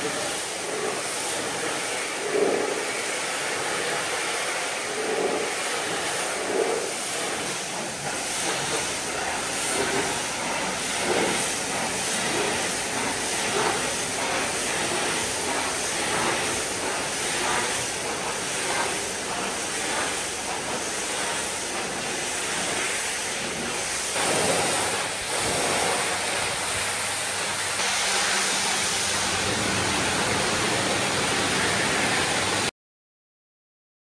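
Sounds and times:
pressure washer spraying water: 0:00.0 - 0:32.7.

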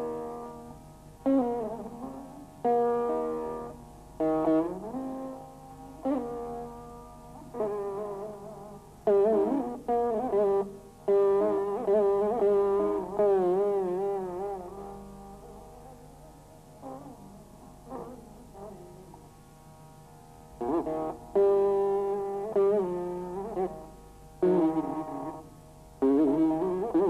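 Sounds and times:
veena plucked with bending slides: 0:00.0 - 0:27.0.

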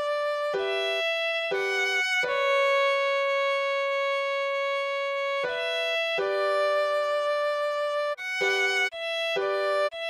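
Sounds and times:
long violin note: 0:00.0 - 0:10.0.

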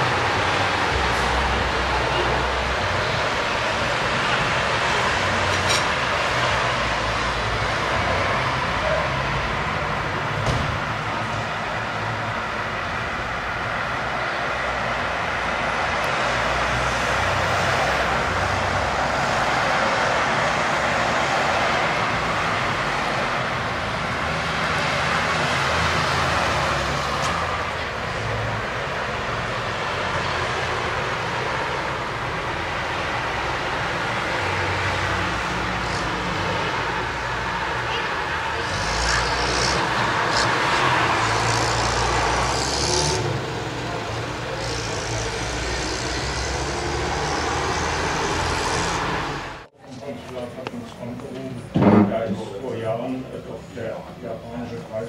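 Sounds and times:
passing cars rushing: 0:00.0 - 0:49.7.

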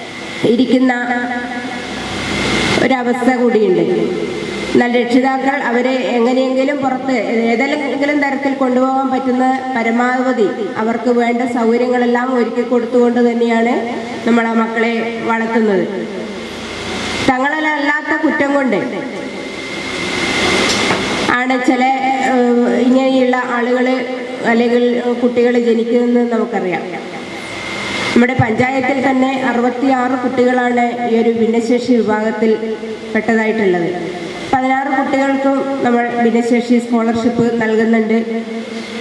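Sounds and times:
rushing noise: 0:00.0 - 0:06.2, 0:13.8 - 0:23.4, 0:26.5 - 0:31.0.

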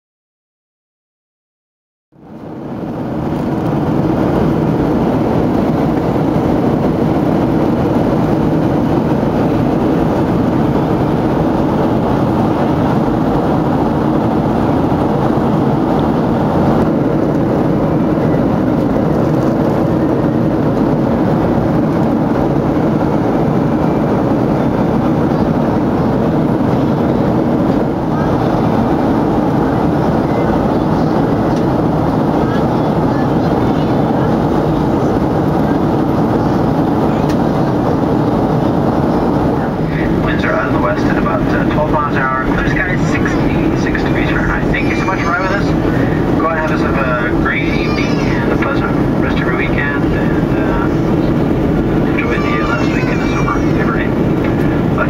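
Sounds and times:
jet engine and airflow in cabin: 0:02.2 - 0:55.0.

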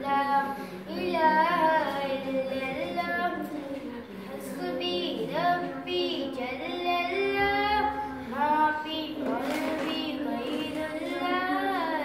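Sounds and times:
boy chanting unaccompanied: 0:00.0 - 0:03.8, 0:04.4 - 0:12.0.

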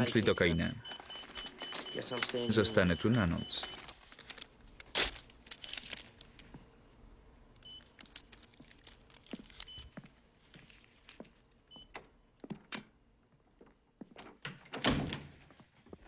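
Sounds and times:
heart monitor beeping: 0:00.0 - 0:03.9, 0:06.4 - 0:08.1, 0:09.3 - 0:10.2, 0:11.6 - 0:12.5
handling clicks and rustles: 0:07.6 - 0:11.3.

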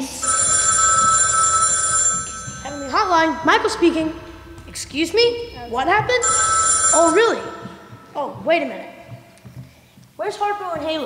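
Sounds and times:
telephone ringing: 0:00.0 - 0:03.5, 0:06.2 - 0:08.1.

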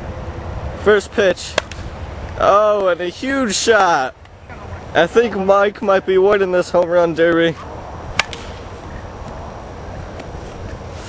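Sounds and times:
steady outdoor rush: 0:00.0 - 0:11.0
plastic bat striking ball: 0:08.2 - 0:08.6.

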